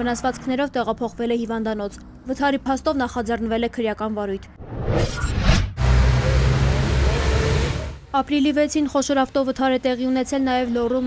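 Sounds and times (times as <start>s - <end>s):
roadside traffic rumble: 0.0s - 4.6s, 5.8s - 11.0s.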